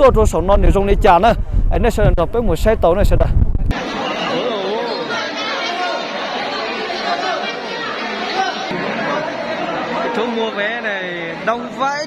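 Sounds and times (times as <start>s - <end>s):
crowd chatter: 3.7s - 12.0s.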